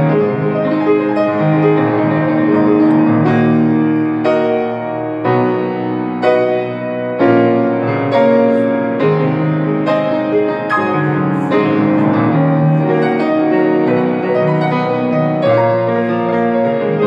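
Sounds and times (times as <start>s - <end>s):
grand piano chords: 0.0s - 17.0s.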